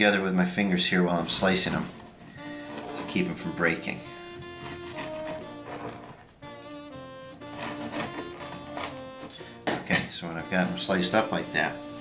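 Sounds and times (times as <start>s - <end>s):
background music with guitar: 0.0s - 12.0s
bread knife sawing through crust: 4.2s - 6.3s, 7.3s - 9.2s.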